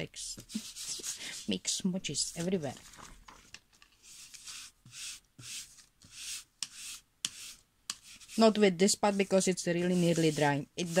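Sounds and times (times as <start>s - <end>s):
ink pad rubbing on paper: 4.1s - 11.0s.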